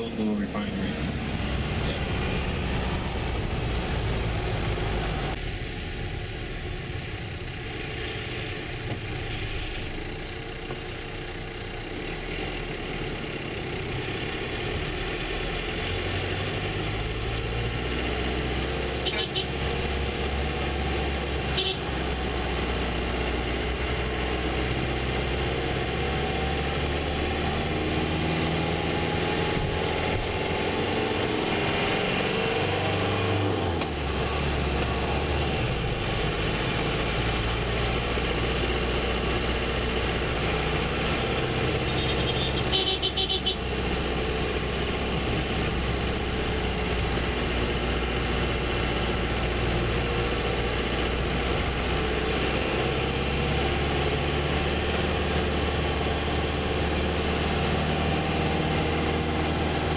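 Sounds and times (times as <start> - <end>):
bus engine humming: 0.0 - 59.9.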